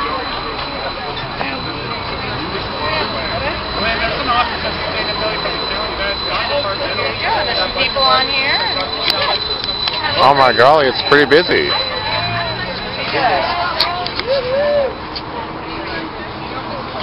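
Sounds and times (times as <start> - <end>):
chatter of many voices: 0.0 - 17.0
streetcar rumbling: 0.0 - 17.0.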